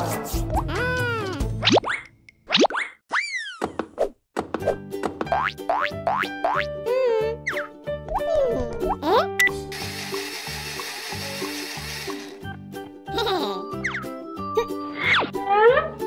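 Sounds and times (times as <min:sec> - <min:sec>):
bouncy children's music: 0:00.0 - 0:01.7, 0:04.4 - 0:16.0
blender whirring: 0:09.7 - 0:12.5.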